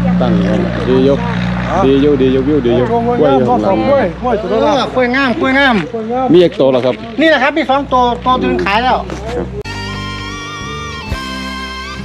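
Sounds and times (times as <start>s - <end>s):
low engine hum: 0.0s - 9.7s
man talking: 0.3s - 9.6s.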